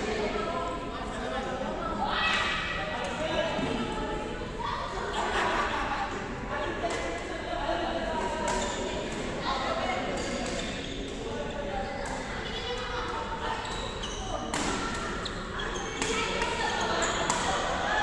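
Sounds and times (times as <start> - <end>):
hall full of voices: 0.0 - 18.0
rackets hitting shuttlecock: 14.5 - 15.1, 17.2 - 17.7.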